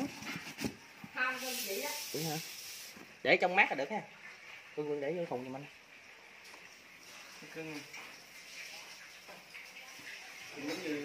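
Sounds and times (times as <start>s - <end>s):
person speaking: 1.2s - 2.6s.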